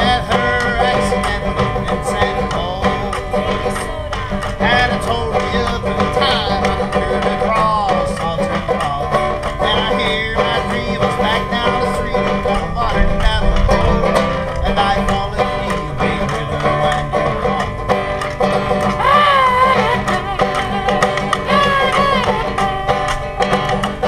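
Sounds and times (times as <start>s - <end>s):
banjo picking: 0.0s - 24.0s
harmonica lead line: 0.0s - 24.0s.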